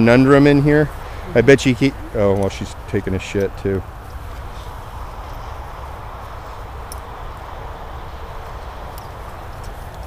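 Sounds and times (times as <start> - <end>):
highway traffic hum: 0.0 - 10.0
wind buffeting microphone: 0.0 - 10.0.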